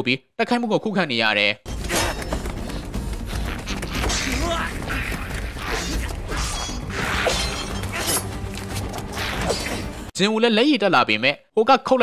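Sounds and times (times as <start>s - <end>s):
background music: 1.7s - 10.5s.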